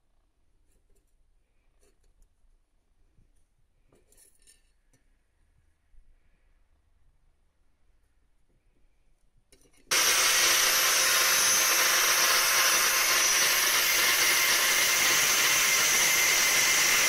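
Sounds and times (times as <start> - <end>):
angle grinder grinding steel: 9.9 - 17.0.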